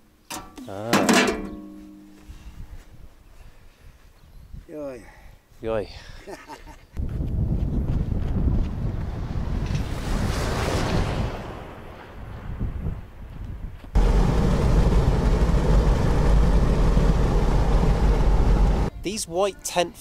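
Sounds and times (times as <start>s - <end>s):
car cabin engine and road rumble: 14.0s - 18.9s.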